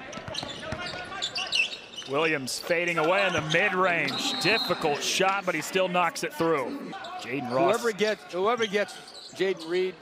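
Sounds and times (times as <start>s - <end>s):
sneaker squeaks: 0.0s - 2.3s, 3.0s - 5.0s, 8.6s - 9.9s.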